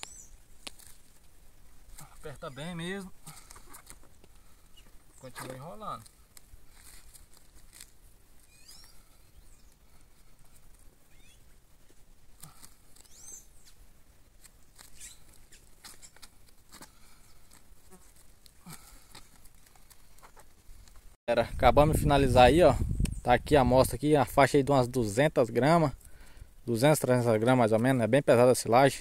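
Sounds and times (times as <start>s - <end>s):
bird chirps: 0.0s - 0.4s, 8.4s - 9.8s, 11.1s - 11.5s, 13.0s - 13.8s, 14.9s - 16.2s
paper crinkling and rustling: 5.2s - 8.0s.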